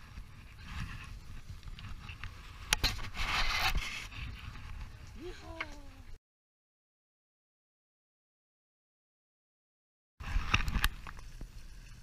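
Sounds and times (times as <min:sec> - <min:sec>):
rumble of wind and water: 0:00.0 - 0:06.2
rushing scraping noise: 0:00.4 - 0:04.8
person crying out: 0:05.2 - 0:06.0.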